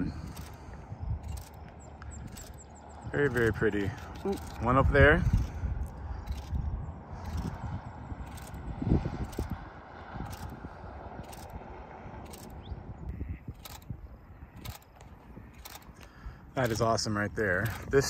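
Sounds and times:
wind noise on microphone: 0.0s - 18.0s.

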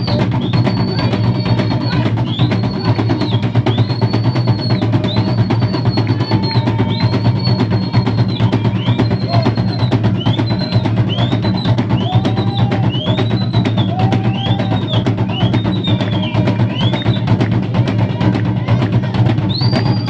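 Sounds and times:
fast drumming: 0.0s - 20.0s.

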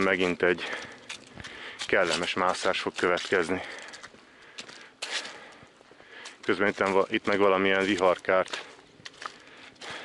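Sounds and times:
footsteps on dry leaves: 0.0s - 10.0s.

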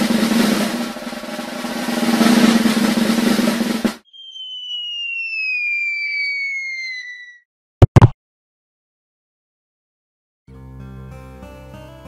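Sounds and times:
snare drum roll: 0.0s - 4.0s
long falling whistle: 4.0s - 7.5s.

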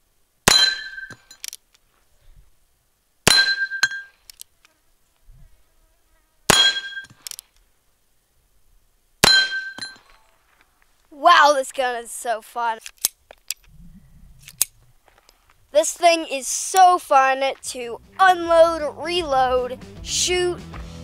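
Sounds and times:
metallic ring of steel targets: 0.5s - 1.5s, 3.3s - 4.2s, 6.5s - 7.2s, 9.2s - 10.3s.

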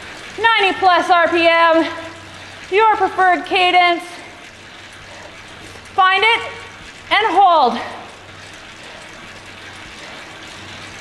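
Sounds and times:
bike trainer whirring hiss: 1.7s - 3.2s, 4.0s - 7.1s, 7.8s - 11.0s.

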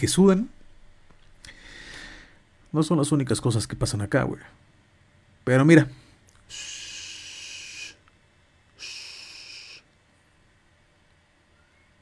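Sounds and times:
person breathing: 1.4s - 2.5s, 6.0s - 8.0s, 8.8s - 9.9s.

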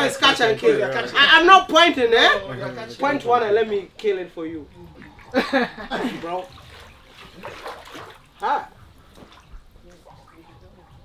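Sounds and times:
water splashing in tank: 4.6s - 11.0s.

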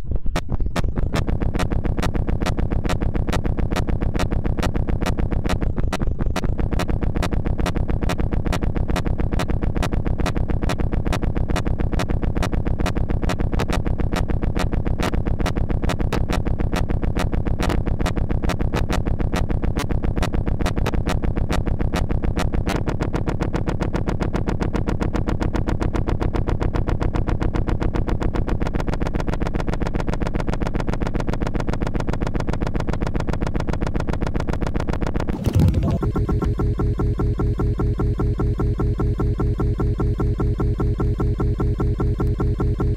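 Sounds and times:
fast-pulsing electronic buzz: 35.3s - 42.9s.

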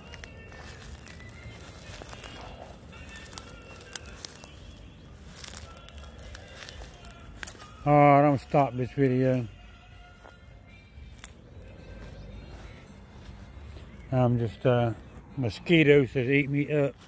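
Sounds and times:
footsteps through rustling grass: 0.0s - 17.0s.

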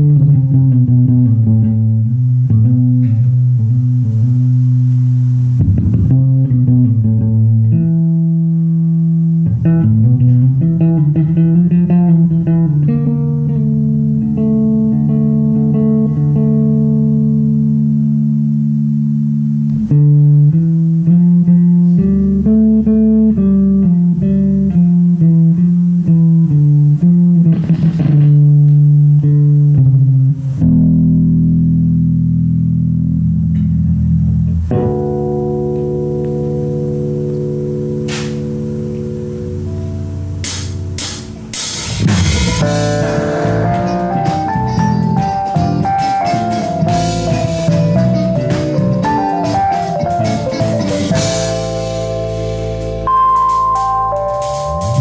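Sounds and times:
band holding chords: 0.0s - 55.0s
electric bass guitar melody: 0.0s - 55.0s.

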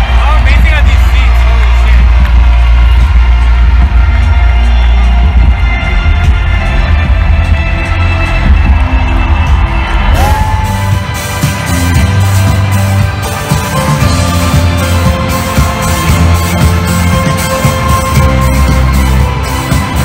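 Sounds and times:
rock band playing live: 8.0s - 20.0s.

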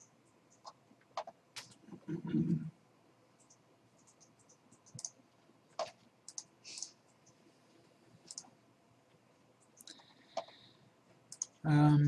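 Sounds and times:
mouse and keyboard clicks: 0.0s - 1.8s, 3.4s - 7.4s, 8.2s - 8.5s, 11.3s - 11.6s.

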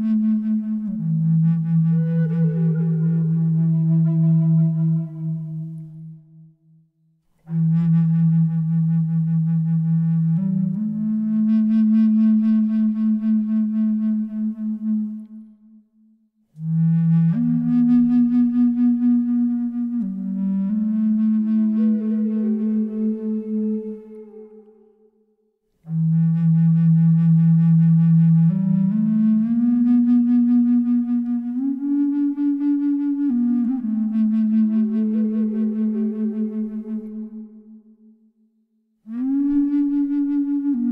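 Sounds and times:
low flute note: 0.0s - 6.8s, 16.6s - 38.3s, 39.1s - 40.9s.

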